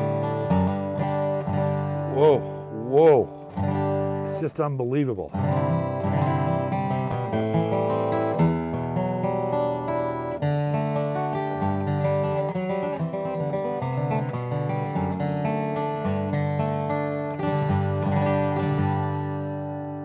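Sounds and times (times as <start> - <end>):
acoustic guitar picked chords: 0.0 - 20.0.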